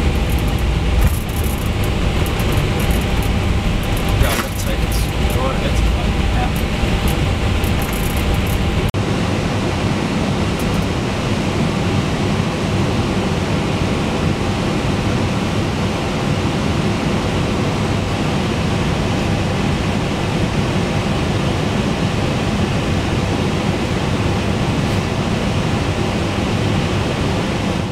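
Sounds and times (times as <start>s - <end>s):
cockpit hiss and hum: 0.0s - 8.9s.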